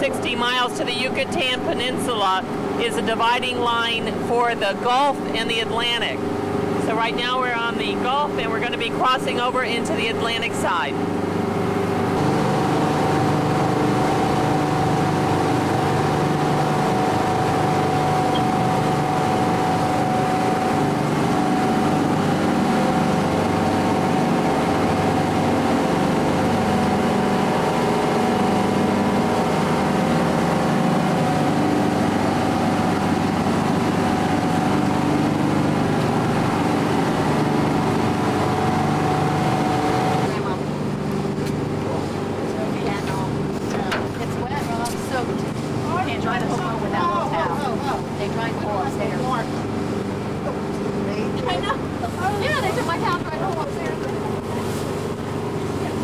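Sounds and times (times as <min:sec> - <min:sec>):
motor boat engine drone: 0:00.0 - 0:56.0
rushing water and wind: 0:11.0 - 0:41.0.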